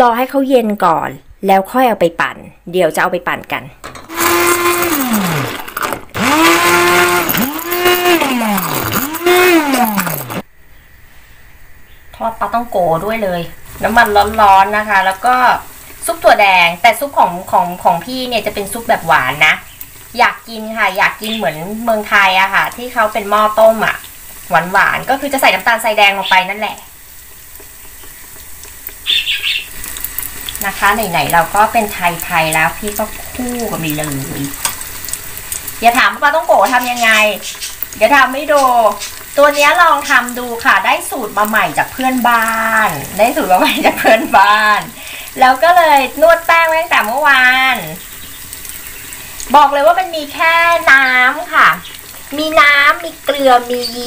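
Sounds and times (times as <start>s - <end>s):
immersion blender motor whine: 4.1s - 10.5s
dough sizzling in hot oil: 12.4s - 54.0s.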